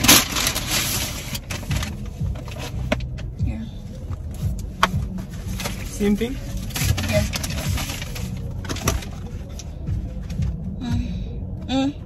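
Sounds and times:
low rumble inside car: 0.0 - 12.0.

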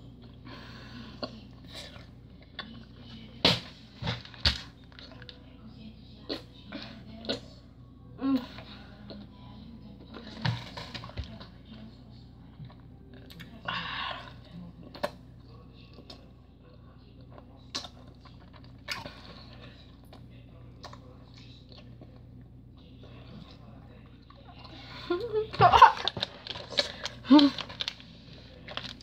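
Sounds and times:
low steady hum: 0.0 - 29.0.

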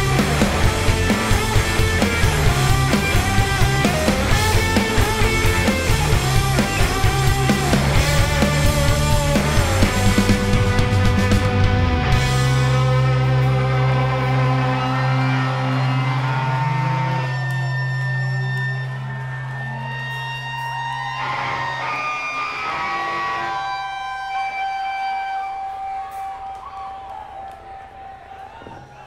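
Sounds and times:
electric guitars and bass chord: 0.0 - 26.0
guitar feedback tones: 0.0 - 29.0.

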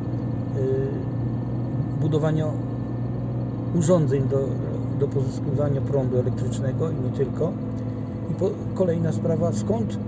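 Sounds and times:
car engine and tyres drone: 0.0 - 10.0.

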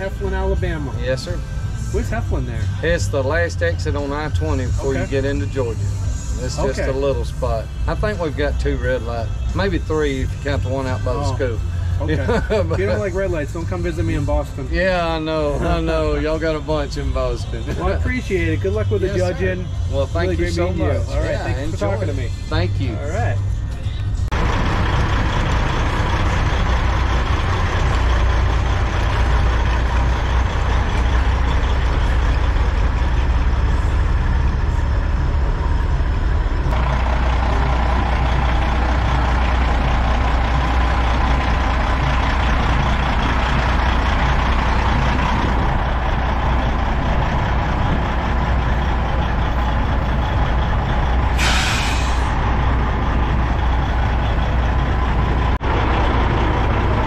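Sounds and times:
diesel truck engine idling: 0.0 - 57.0
air brake hiss: 51.3 - 52.4.

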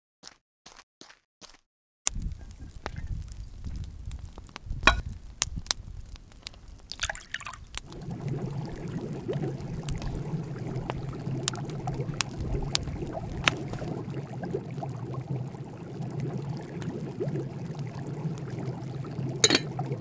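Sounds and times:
water pouring with drips: 6.9 - 20.0
short crackle: 9.8 - 14.2.

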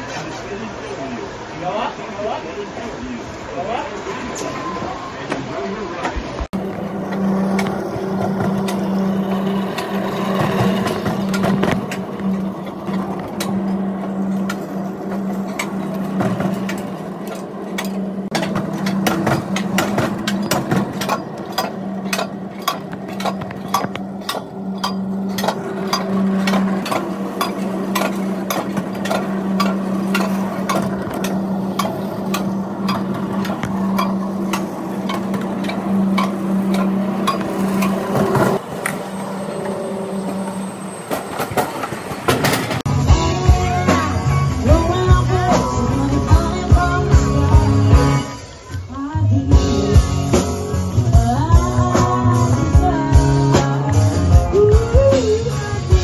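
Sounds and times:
coaster cart running on rail: 0.0 - 56.0
wheels clicking and rattling: 5.3 - 48.9.

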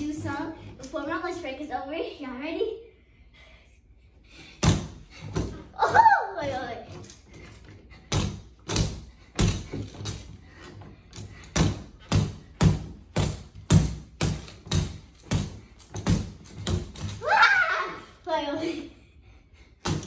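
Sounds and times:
gloves thudding on punching bag: 4.6 - 5.6, 8.1 - 10.1, 11.4 - 17.2.

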